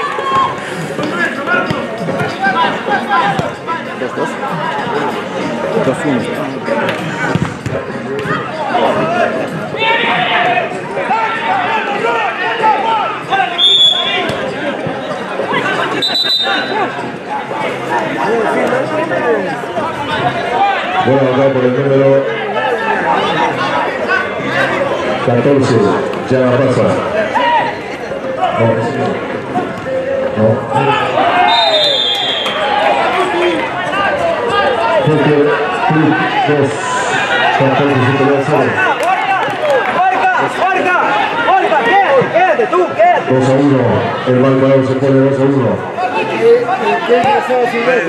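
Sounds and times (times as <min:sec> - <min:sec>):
spectators shouting and chattering: 0:00.0 - 0:48.0.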